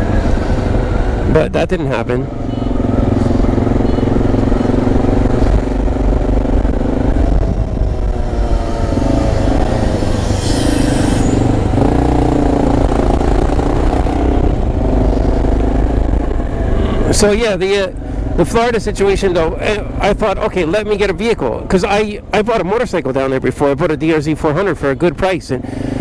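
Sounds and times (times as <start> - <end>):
motorcycle engine running: 2.0 - 22.4.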